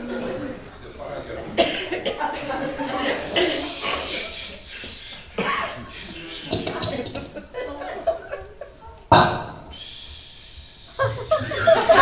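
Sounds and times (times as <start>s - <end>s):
man coughing: 1.5s - 4.6s, 5.4s - 7.0s.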